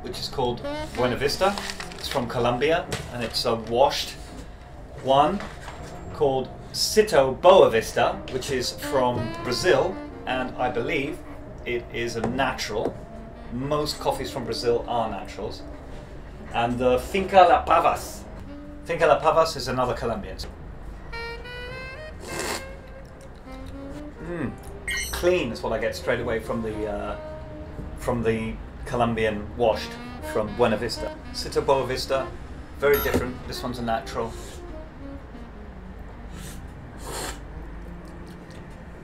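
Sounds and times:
background music with held note: 0.0 - 2.9, 7.0 - 19.7, 20.9 - 39.0
hissy slurp of coffee: 22.2 - 22.7, 36.4 - 37.4.

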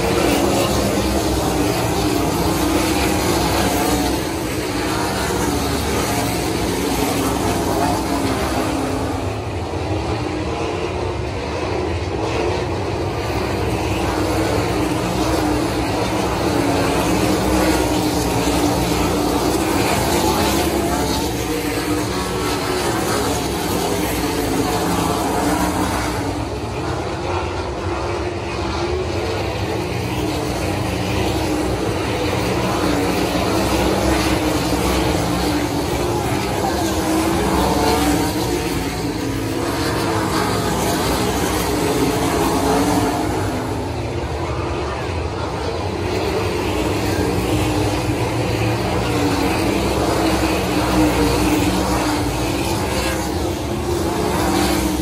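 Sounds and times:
racing car engines roaring: 0.0 - 55.0.

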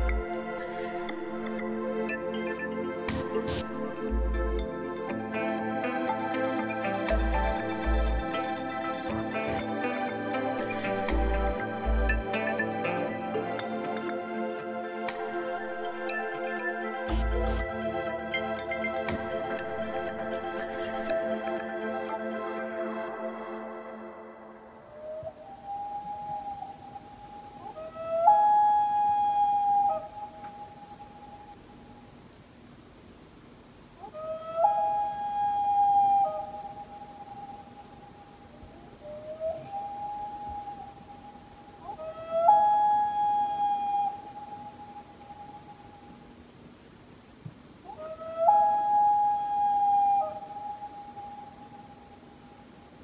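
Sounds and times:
steady high-pitched hum: 0.0 - 53.0
loon wailing calls: 24.9 - 31.5, 34.0 - 38.2, 38.8 - 45.9, 47.9 - 52.0.

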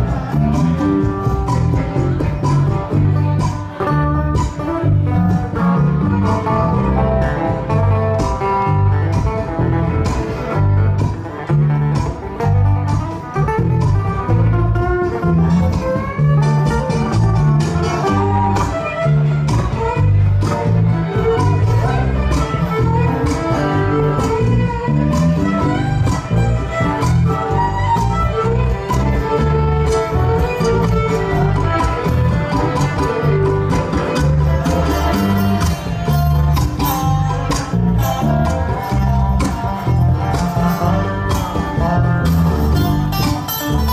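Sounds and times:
low bass notes: 0.0 - 43.9
slide resonator guitar melody: 0.0 - 43.9
strummed acoustic guitar: 0.0 - 43.9.

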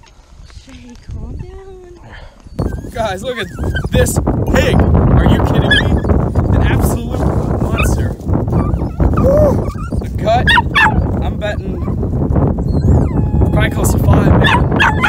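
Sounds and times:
wind rumble on microphone: 0.0 - 15.0
dog whining: 2.4 - 4.9, 5.5 - 6.6, 7.8 - 12.0, 12.6 - 15.0.

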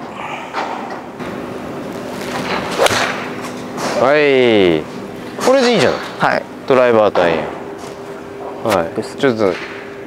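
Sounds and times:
golf club swish: 2.8 - 3.1
golf club striking ball: 2.8 - 3.2.

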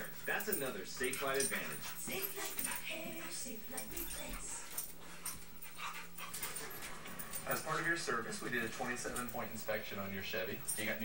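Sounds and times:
dogs play-fighting: 0.0 - 11.0.

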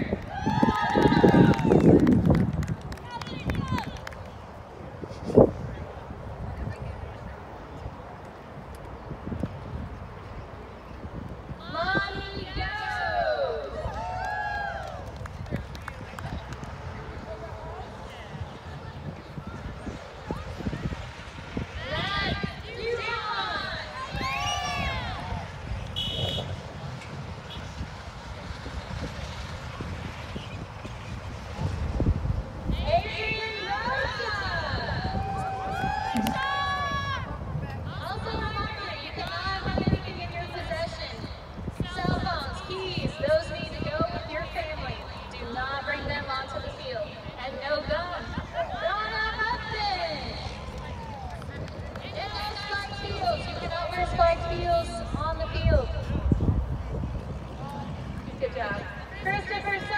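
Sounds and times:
distant road traffic: 0.0 - 59.9
wind on microphone: 0.0 - 59.9.

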